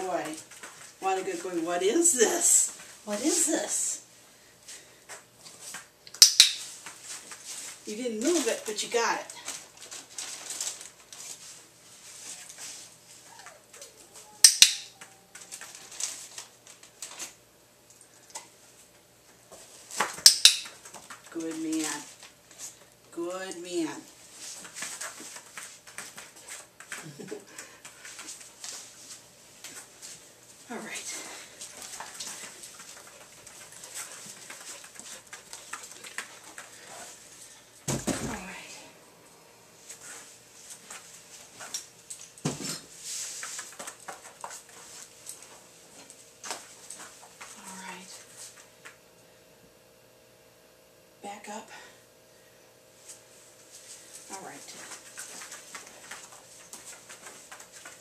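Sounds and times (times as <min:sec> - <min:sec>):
dog moving on foam mats: 0:24.2 - 0:30.3, 0:30.9 - 0:38.7, 0:39.9 - 0:47.6, 0:53.7 - 0:58.0
dog panting: 0:31.2 - 0:37.2.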